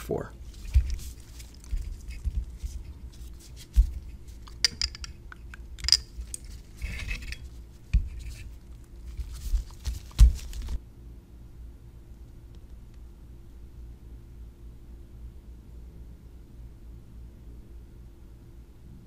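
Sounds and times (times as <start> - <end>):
glass clinking and scraping: 0.6 - 8.5.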